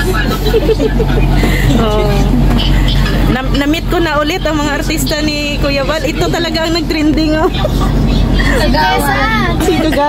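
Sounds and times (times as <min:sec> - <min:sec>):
van engine and road hum: 0:00.0 - 0:10.0.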